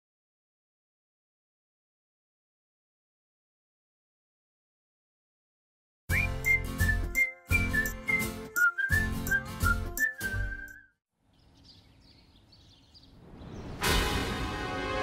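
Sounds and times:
whistled jingle over heavy beat: 6.1s - 10.8s.

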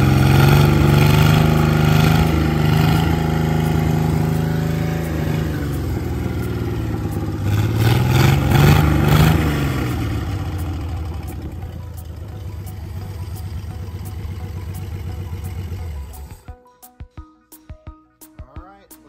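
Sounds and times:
marine engine idling and revving: 0.0s - 16.4s.

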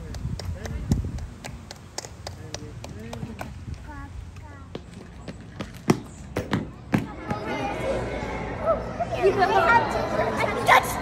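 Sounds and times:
people talking in background: 2.3s - 11.0s.

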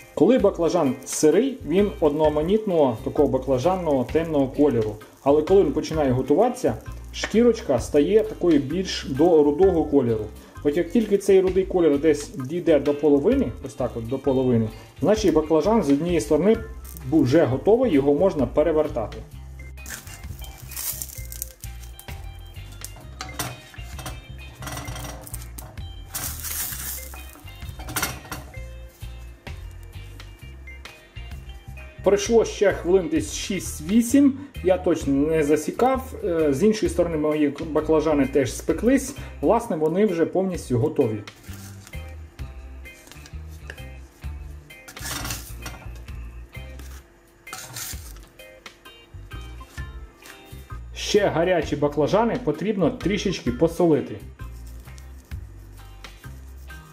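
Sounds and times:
background music: 0.0s - 56.9s
spatula scraping a frying pan: 19.8s - 30.4s, 41.4s - 42.1s, 43.6s - 46.0s, 46.7s - 48.3s, 54.4s - 56.9s
wooden spatula scraping frying pan: 41.3s - 42.1s, 43.2s - 46.0s, 46.7s - 48.3s.

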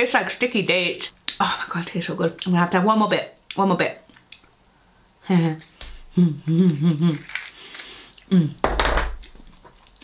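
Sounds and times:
woman humming: 5.2s - 7.3s, 8.2s - 8.6s.

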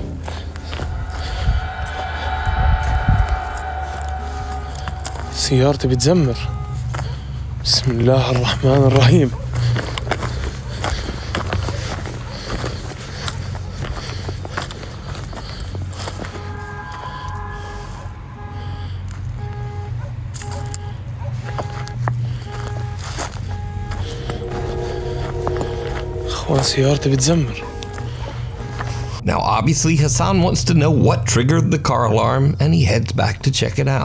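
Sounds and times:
low steady drone: 0.0s - 7.4s, 16.0s - 19.6s, 23.1s - 30.4s
distant car alarm beeping: 0.3s - 8.4s, 16.2s - 29.5s.

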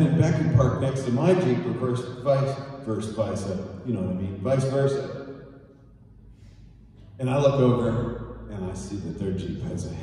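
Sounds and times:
man speaking through microphone: 0.0s - 5.2s, 7.2s - 10.0s
steady low hum: 0.0s - 10.0s.

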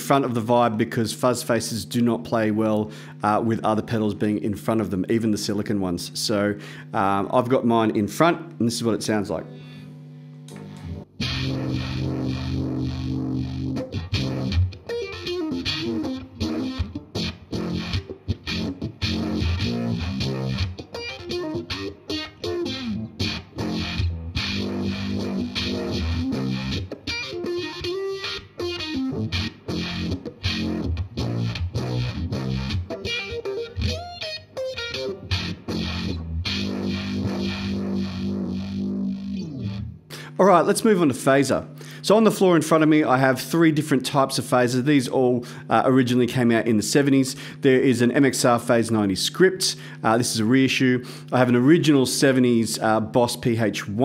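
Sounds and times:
distorted electric guitar with vibe: 8.6s - 41.0s.

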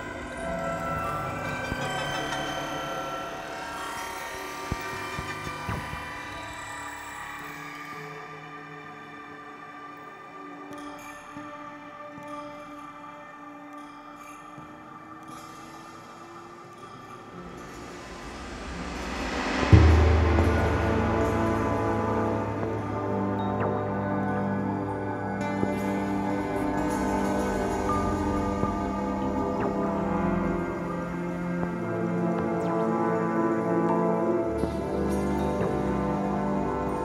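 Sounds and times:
dark ambient electronic drones: 0.0s - 37.0s
deep low drone: 17.4s - 31.9s.

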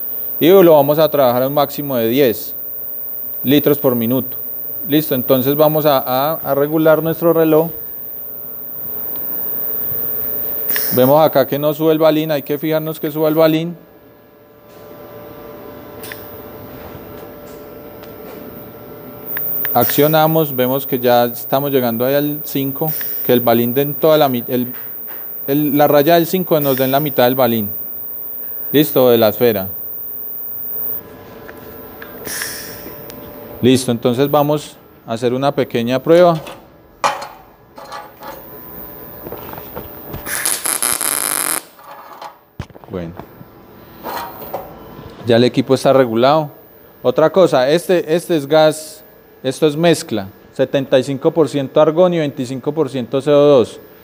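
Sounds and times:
welding arc hissing: 0.0s - 11.3s, 19.3s - 31.0s, 32.0s - 33.1s, 38.4s - 41.8s
faint steady hum: 0.0s - 54.0s
gas hissing through regulator: 32.2s - 33.0s.

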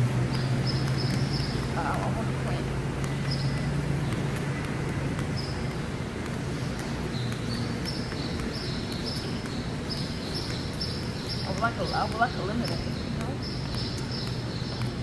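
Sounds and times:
background hum and noise: 0.0s - 15.0s
footsteps on concrete: 0.0s - 15.0s.

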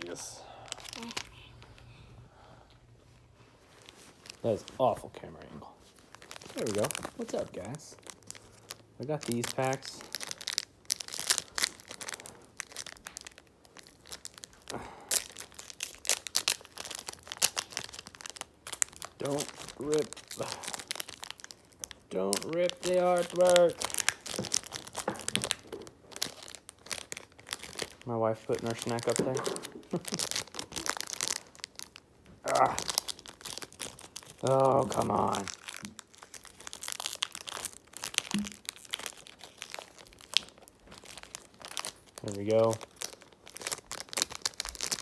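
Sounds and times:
foil wrapper crinkling and tearing: 0.0s - 1.4s, 3.8s - 5.1s, 5.9s - 45.0s.

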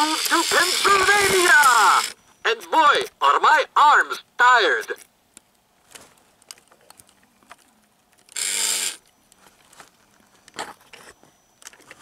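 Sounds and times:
animatronic gears clicking: 0.0s - 2.2s, 8.3s - 9.0s.

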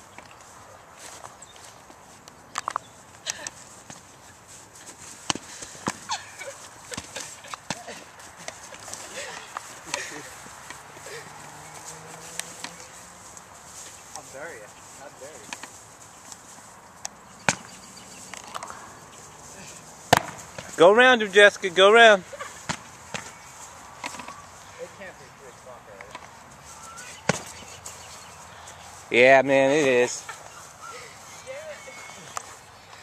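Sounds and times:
footsteps scuffing on dry ground: 0.0s - 20.9s, 26.2s - 33.0s.

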